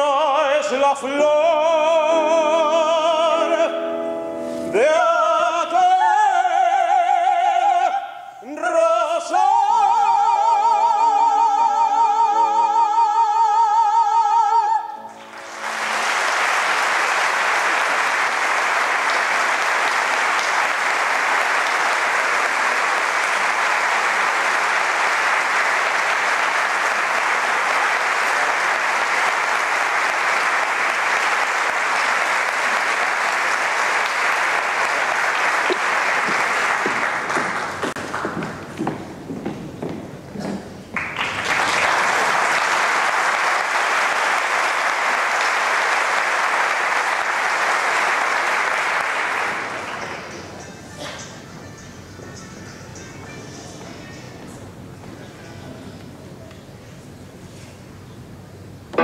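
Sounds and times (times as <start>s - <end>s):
audience applauding: 15.1s - 51.4s.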